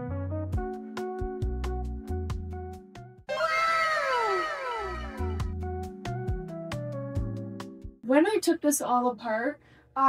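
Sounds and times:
background music: 0:00.0 - 0:08.3.

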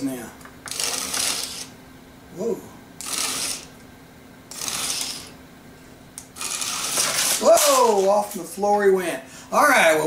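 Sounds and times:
faint steady hum: 0:00.0 - 0:10.0
toy electronic hiss: 0:04.5 - 0:05.3.

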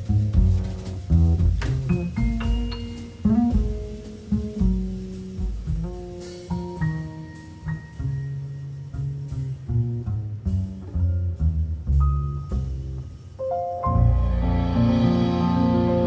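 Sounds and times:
piano melody notes: 0:00.0 - 0:09.8, 0:10.8 - 0:16.0
low bass notes: 0:00.0 - 0:16.0.

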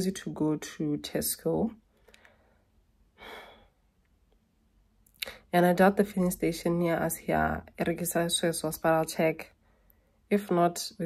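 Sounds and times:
woman sighing: 0:03.2 - 0:03.7.

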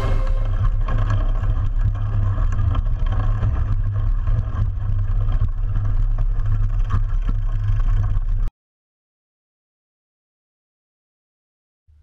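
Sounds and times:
bike tyre and frame rumble: 0:00.1 - 0:08.5.

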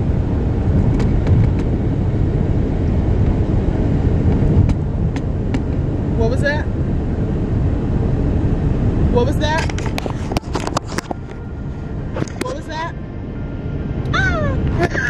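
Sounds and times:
car cabin low rumble: 0:00.0 - 0:15.0.

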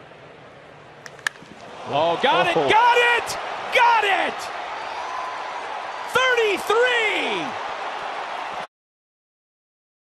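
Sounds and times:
ballpark crowd noise: 0:00.0 - 0:08.7
bat cracking on baseball: 0:01.0 - 0:01.7.

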